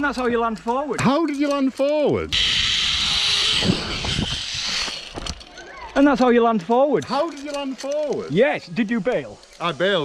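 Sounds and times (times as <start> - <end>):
wind rushing hiss: 2.3 - 5.3.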